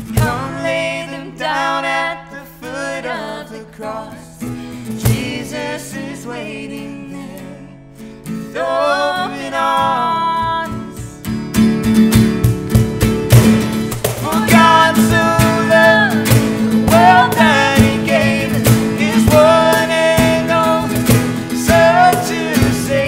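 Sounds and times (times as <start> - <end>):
cajon beat: 0.0 - 0.8, 5.0 - 5.6, 10.2 - 23.0
voices singing: 0.0 - 7.8, 8.4 - 11.2, 14.0 - 23.0
strummed acoustic guitar: 0.0 - 23.0.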